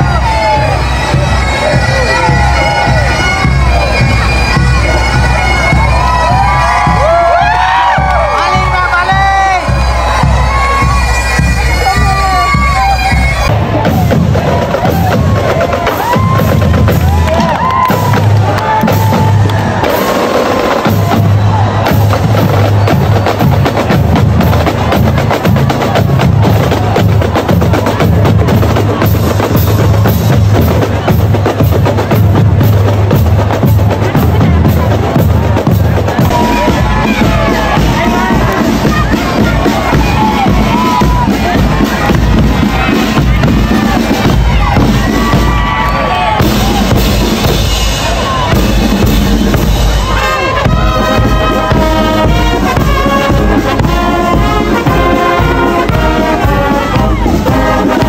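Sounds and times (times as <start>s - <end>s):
bagpipes playing: 0.0s - 7.0s, 8.2s - 13.8s, 48.0s - 58.0s
drumming: 0.0s - 58.0s.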